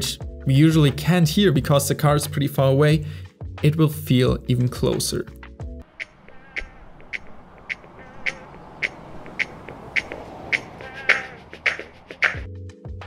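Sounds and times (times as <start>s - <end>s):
car passing whoosh: 5.8s - 12.5s.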